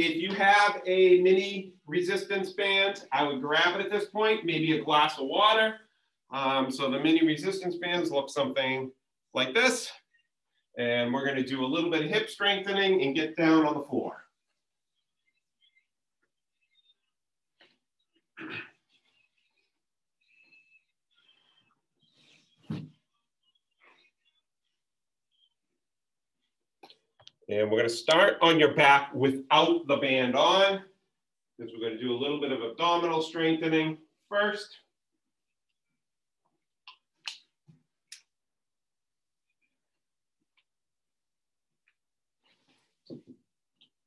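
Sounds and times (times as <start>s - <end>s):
knocks and rustling of movement: 21.6s - 24.0s.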